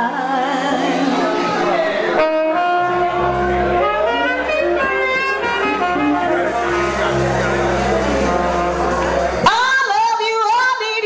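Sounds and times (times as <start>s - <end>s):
live blues band: 0.0s - 11.0s
electric guitar: 0.6s - 10.0s
saxophone melody: 1.2s - 9.9s
low bass note: 2.8s - 9.5s.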